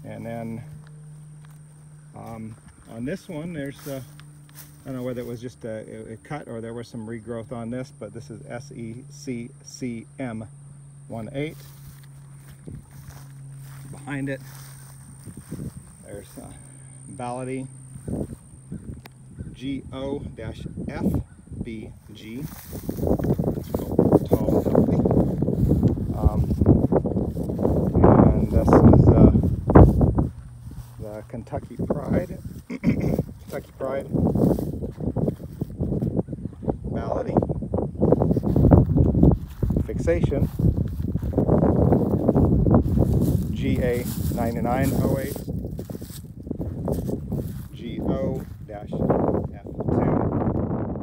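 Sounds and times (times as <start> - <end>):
footsteps through tall grass: 0.0 - 5.9, 11.2 - 19.4, 21.9 - 49.5
faint high whine: 0.0 - 51.0
low hum: 0.0 - 51.0
wind buffeting microphone: 11.7 - 51.0.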